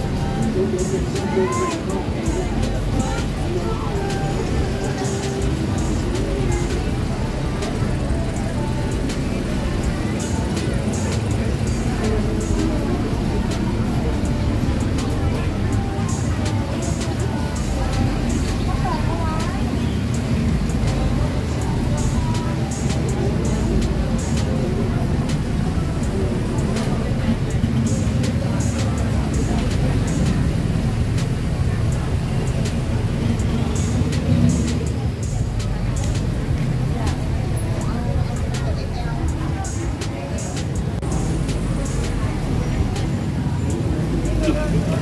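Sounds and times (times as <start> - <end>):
music playing: 0.0 - 45.0
road traffic rumble: 0.0 - 45.0
voices of shoppers and vendors: 0.0 - 45.0.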